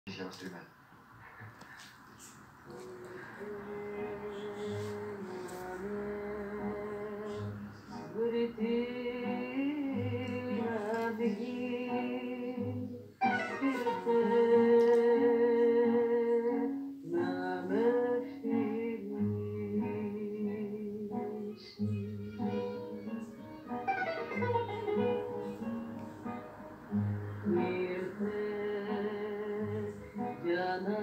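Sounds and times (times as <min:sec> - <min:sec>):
instrumental accompaniment: 0:02.2 - 0:31.0
woman singing: 0:02.7 - 0:23.0, 0:27.2 - 0:31.0.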